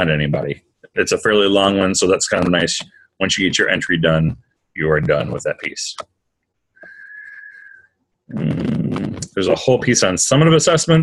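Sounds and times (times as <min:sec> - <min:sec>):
steady high whistle-like tone: 0:06.8 - 0:07.9.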